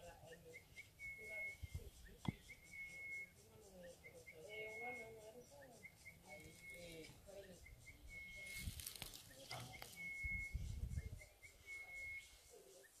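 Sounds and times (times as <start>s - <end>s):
bird calling pips and whistle: 0.0s - 13.0s.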